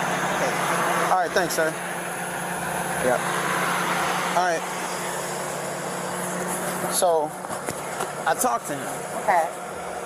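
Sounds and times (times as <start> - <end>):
outdoor noise: 0.0 - 10.0
vehicle engine idling: 0.0 - 10.0.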